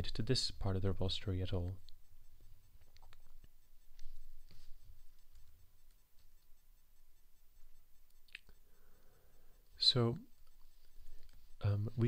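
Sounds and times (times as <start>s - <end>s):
low steady hum: 0.0s - 12.0s
faint sharp clicks: 1.6s - 11.5s.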